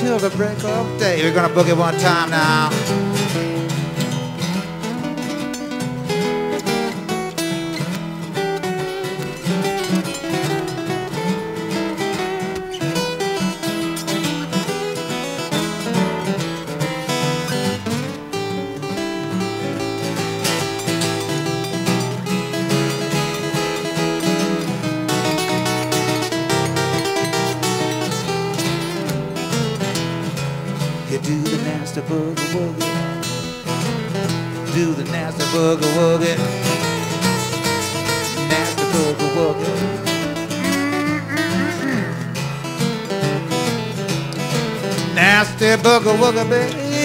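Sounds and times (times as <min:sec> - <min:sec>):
acoustic guitars playing blues: 0:00.0 - 0:47.0.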